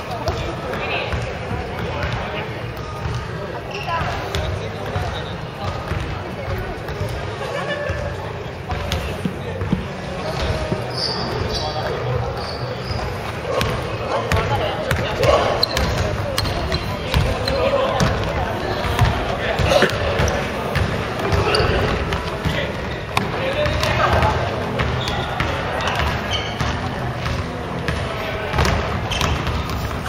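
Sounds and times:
players' voices: 0:00.0 - 0:30.0
basketballs bouncing on wooden floor: 0:00.2 - 0:07.2, 0:07.9 - 0:11.5, 0:13.5 - 0:30.0.

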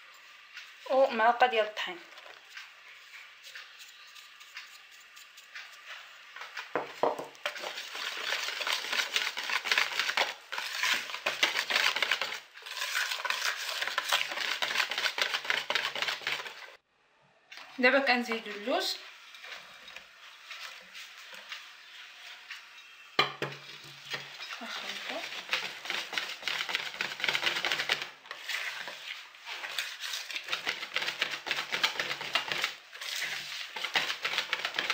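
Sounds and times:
whisk clicking and scraping bowl: 0:00.0 - 0:16.8, 0:17.5 - 0:34.9.

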